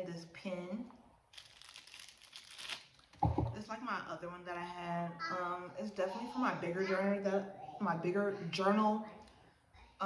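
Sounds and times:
plastic packaging crinkling: 1.3 - 3.2.

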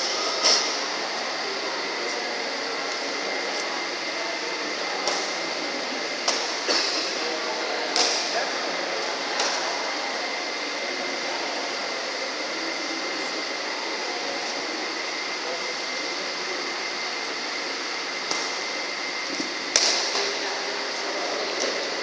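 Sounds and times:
fans humming: 0.0 - 22.0
racket striking shuttlecock: 7.9 - 8.3, 18.3 - 18.6, 19.7 - 20.3.

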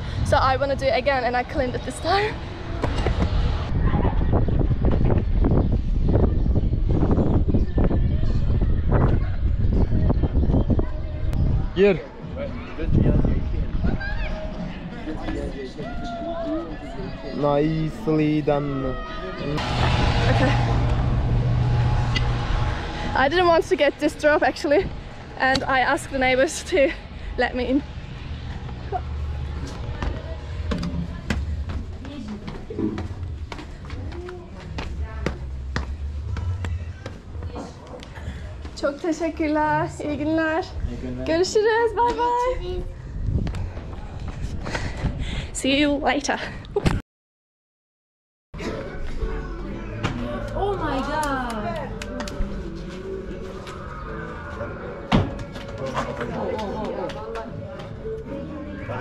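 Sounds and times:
indistinct voices: 18.7 - 40.9, 48.6 - 59.0
steady low rumble: 19.4 - 41.2
footsteps on stone stairs: 29.9 - 38.9.

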